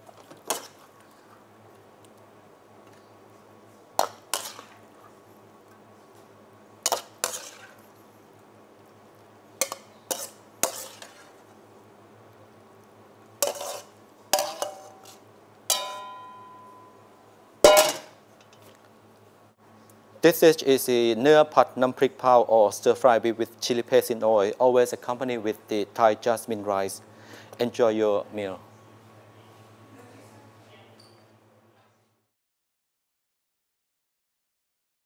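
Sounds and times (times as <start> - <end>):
metal ladle scraping a wok: 4.3 - 4.8, 6.9 - 7.8, 9.6 - 11.4, 13.4 - 16.0.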